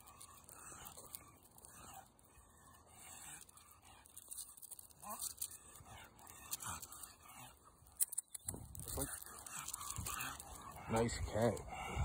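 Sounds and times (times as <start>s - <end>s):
dog making low vocal sounds: 8.8s - 12.0s.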